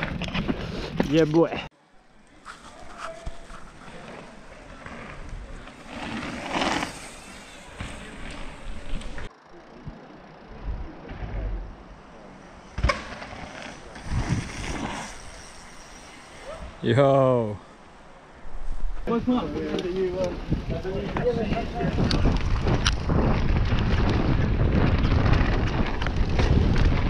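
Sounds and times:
bike tyres on dirt: 0:00.0 - 0:27.0.

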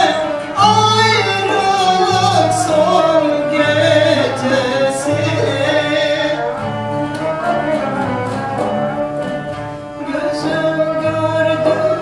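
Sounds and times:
woman singing folk song: 0:00.0 - 0:06.7, 0:10.0 - 0:12.0
cello: 0:00.0 - 0:12.0
ney flute: 0:00.0 - 0:12.0
oud: 0:00.0 - 0:12.0.

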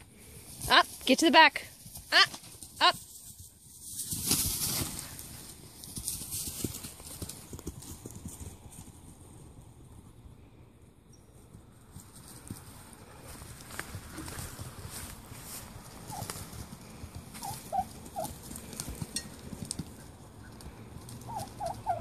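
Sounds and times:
animals scuffling on straw: 0:00.2 - 0:08.8, 0:11.9 - 0:22.0.

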